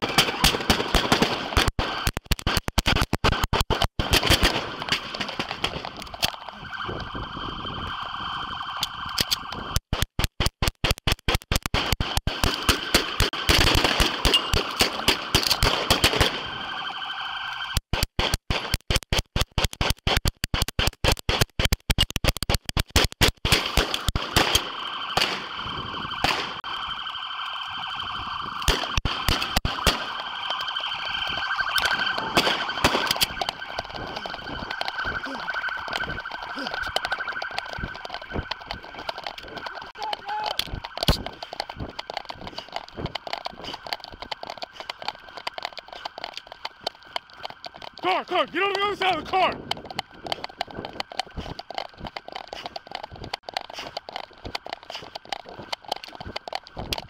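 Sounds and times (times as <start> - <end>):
steady electronic alarm tone: 5.9 - 9.8, 12.4 - 17.8, 24.2 - 53.4.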